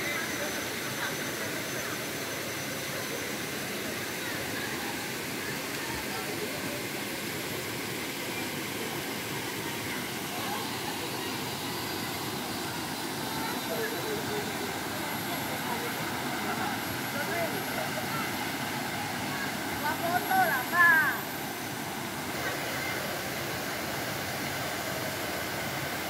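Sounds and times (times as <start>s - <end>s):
waterfall rushing over rocks: 2.9s - 26.0s.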